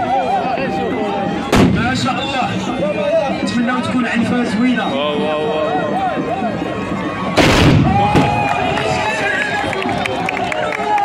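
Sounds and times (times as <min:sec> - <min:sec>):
muskets firing in one blast: 0:01.5 - 0:01.9, 0:07.4 - 0:08.4
gunshot echo: 0:01.5 - 0:02.0, 0:07.4 - 0:08.4.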